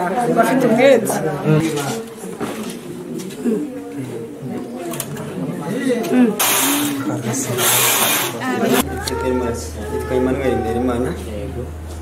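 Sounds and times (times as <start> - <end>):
low background voices talking: 0.0 - 12.0.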